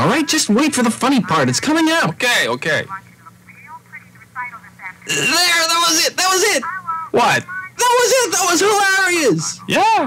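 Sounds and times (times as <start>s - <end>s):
steady low hum: 0.0s - 10.0s
thin voice from television: 0.0s - 10.0s.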